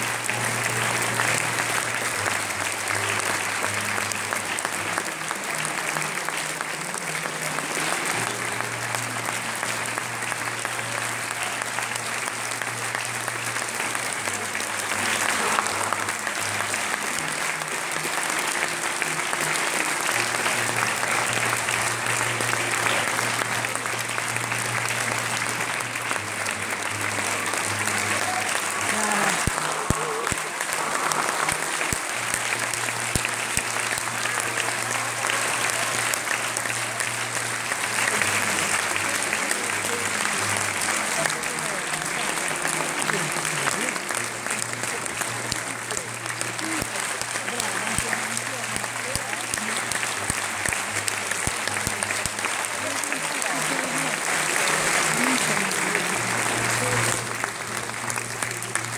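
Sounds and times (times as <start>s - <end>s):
audience applauding: 0.0s - 58.9s.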